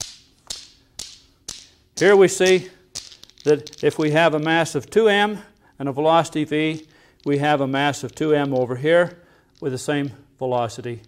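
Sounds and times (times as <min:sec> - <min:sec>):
newton's cradle balls clacking: 0:00.0 - 0:11.0.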